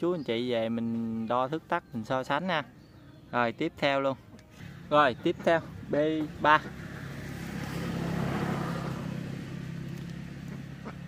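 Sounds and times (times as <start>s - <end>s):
motor vehicle passing by: 4.6s - 11.0s.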